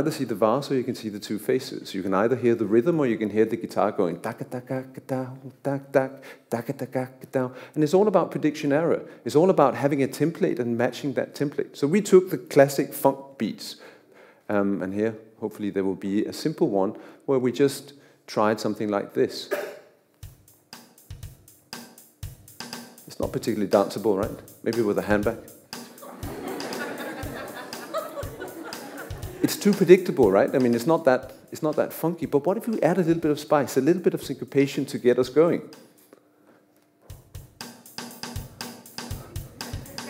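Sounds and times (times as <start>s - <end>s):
drum kit funk beat: 19.5s - 36.1s, 37.0s - 40.0s.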